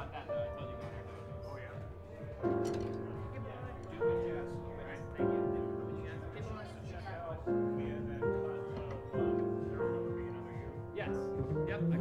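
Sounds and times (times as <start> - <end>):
grand piano slow chords: 0.0 - 12.0.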